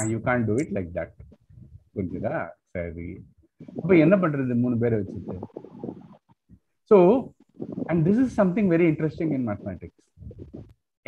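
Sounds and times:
man making wordless vocal sounds: 0:00.0 - 0:01.2.

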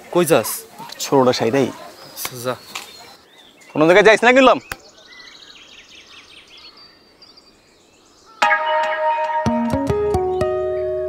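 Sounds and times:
faint birds chirping: 0:00.0 - 0:08.5, 0:09.5 - 0:11.0
guitar music: 0:08.4 - 0:11.0.

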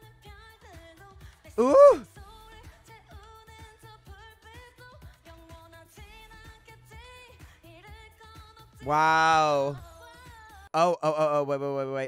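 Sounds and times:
pop song with female vocal: 0:00.0 - 0:10.8.

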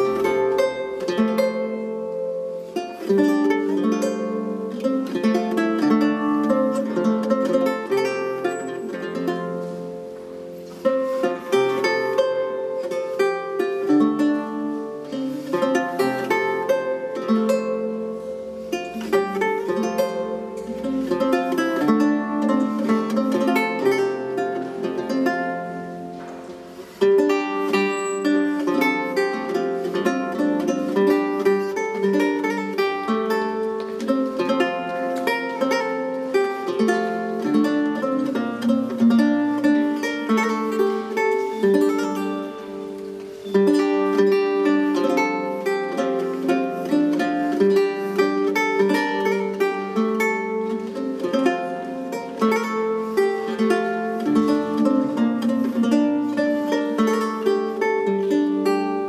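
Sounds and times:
lute played fingerstyle: 0:00.0 - 0:59.0.

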